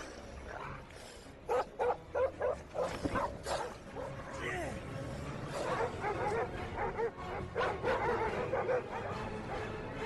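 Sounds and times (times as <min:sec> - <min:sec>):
dogs barking: 0:01.4 - 0:04.4, 0:05.5 - 0:09.8.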